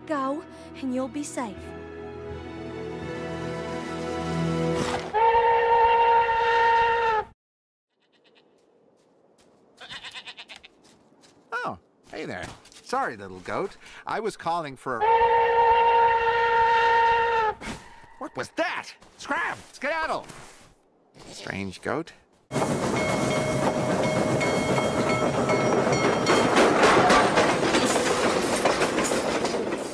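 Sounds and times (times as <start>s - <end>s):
goat bleating: 7.9s - 8.6s, 9.8s - 10.8s
wheels clacking over rail joints: 22.5s - 29.9s.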